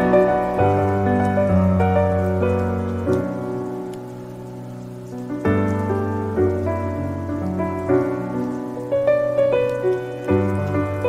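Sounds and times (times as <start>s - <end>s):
rain: 0.0s - 11.0s
soft slow piano music: 0.0s - 11.0s.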